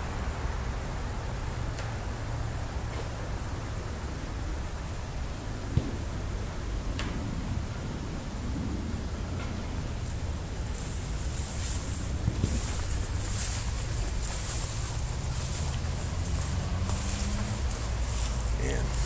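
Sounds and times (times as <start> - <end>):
high hiss: 0.0 - 19.0
steady low rumble: 0.0 - 19.0.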